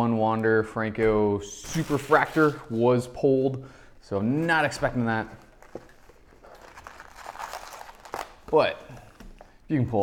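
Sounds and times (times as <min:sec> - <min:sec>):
card packs crinkling and rustling: 0:04.6 - 0:09.5.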